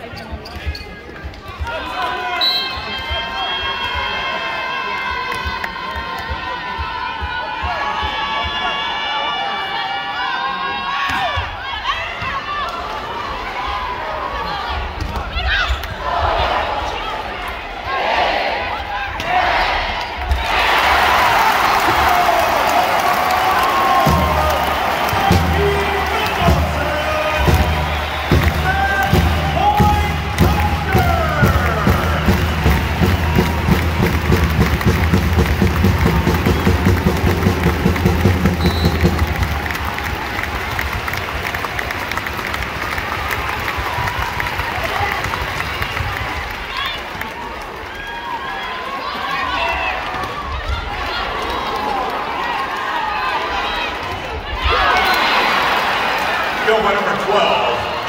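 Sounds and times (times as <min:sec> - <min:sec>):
arena crowd cheering: 0:01.3 - 0:58.0
pep band with drums and cymbals: 0:23.6 - 0:39.8.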